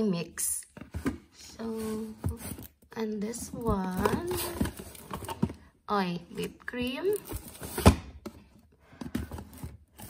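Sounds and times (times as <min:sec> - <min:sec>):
cardboard boxes tapping and knocking: 0:03.4 - 0:05.6.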